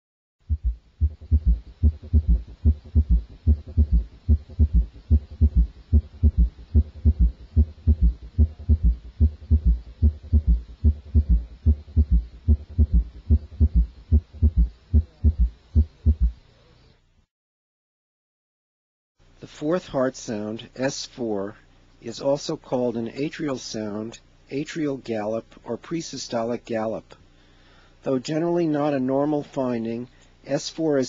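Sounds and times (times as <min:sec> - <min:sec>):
heartbeat thumps through stethoscope: 0:00.4 - 0:16.4.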